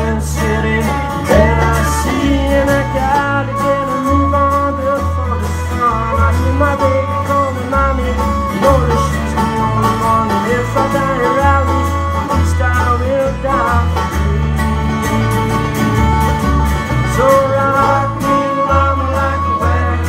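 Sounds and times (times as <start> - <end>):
bass line: 0.0 - 20.0
plucked string instruments: 0.0 - 20.0.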